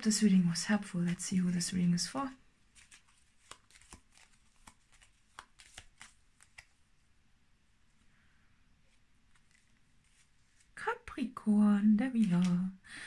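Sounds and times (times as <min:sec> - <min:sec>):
cards being shuffled: 0:02.7 - 0:06.8, 0:08.9 - 0:10.8, 0:12.2 - 0:12.7.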